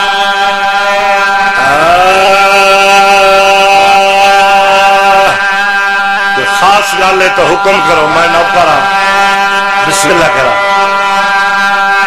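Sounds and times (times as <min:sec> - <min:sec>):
man chanting through microphone: 0:00.0 - 0:12.0.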